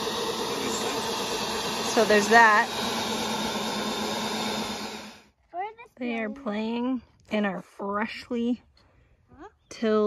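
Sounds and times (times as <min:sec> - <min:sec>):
tines churning soil: 0:00.0 - 0:05.2
electric tiller motor hum: 0:00.0 - 0:05.3.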